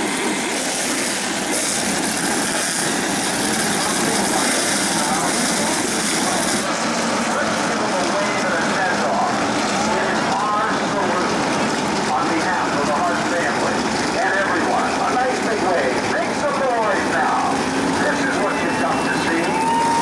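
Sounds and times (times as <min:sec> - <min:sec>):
race car engines running: 0:00.0 - 0:20.0.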